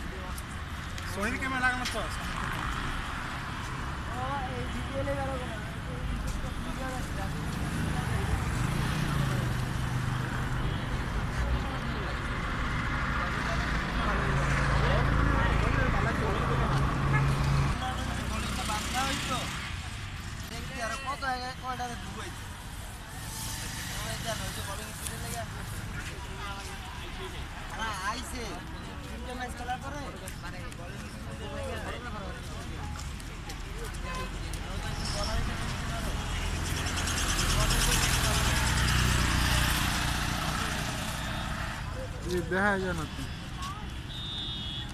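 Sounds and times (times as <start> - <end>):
vehicle passing by: 31.6 - 43.5.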